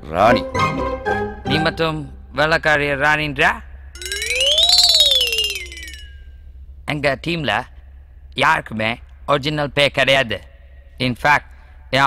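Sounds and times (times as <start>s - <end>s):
buzzy whistle-like gliding tone: 4.0s - 6.2s.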